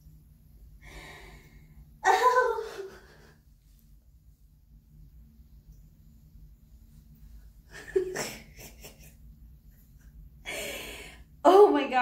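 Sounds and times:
woman exclaiming: 0:02.0 - 0:02.9.

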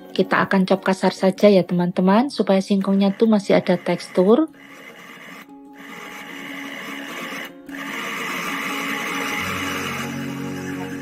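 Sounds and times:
electric food chopper motor: 0:02.7 - 0:11.0.

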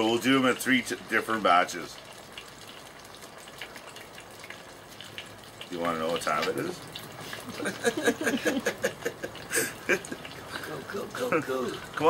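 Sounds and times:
food frying in hot oil: 0:00.0 - 0:12.0
laughter: 0:07.4 - 0:11.5.

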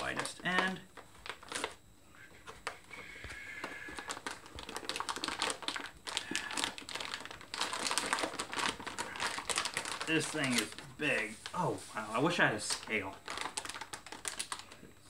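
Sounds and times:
plastic bag crinkling: 0:00.0 - 0:01.8, 0:03.6 - 0:14.8.

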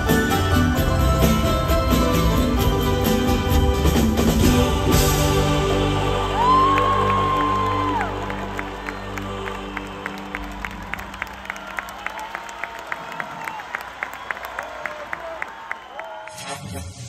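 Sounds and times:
crowd clapping in rhythm: 0:05.4 - 0:16.5
crowd whistles: 0:13.2 - 0:17.0.

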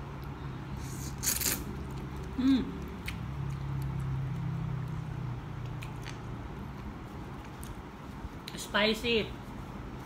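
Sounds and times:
person slurping noodles: 0:00.8 - 0:01.8.

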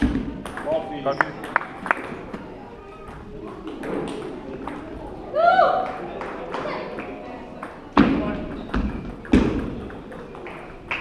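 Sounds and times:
heavy thumps echoing in a hall: 0:00.0 - 0:02.4, 0:07.8 - 0:10.7.

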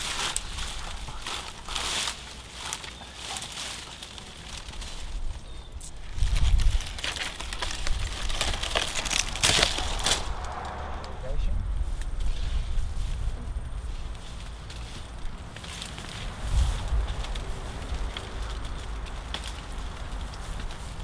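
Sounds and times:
brush and twigs rustling: 0:00.0 - 0:21.0
low rumble: 0:04.5 - 0:21.0.

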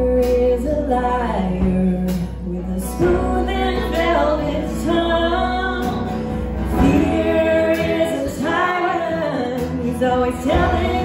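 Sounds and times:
acoustic guitar: 0:00.0 - 0:11.0
piano: 0:00.0 - 0:11.0
woman singing: 0:00.0 - 0:11.0.

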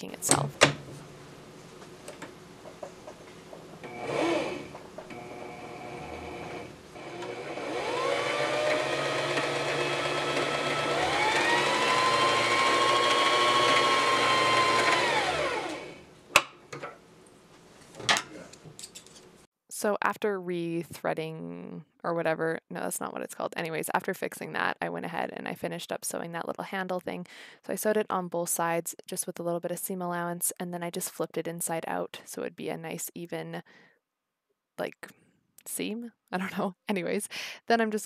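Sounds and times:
sewing machine motor whine: 0:03.8 - 0:16.1.

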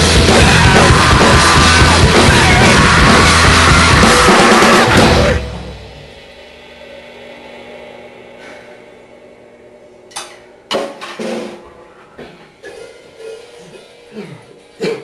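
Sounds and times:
electric bass and drums ringing out: 0:00.0 - 0:09.9.

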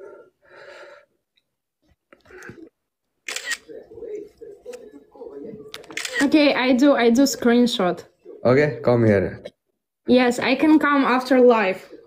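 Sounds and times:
indistinct talk over video call: 0:00.0 - 0:12.0.

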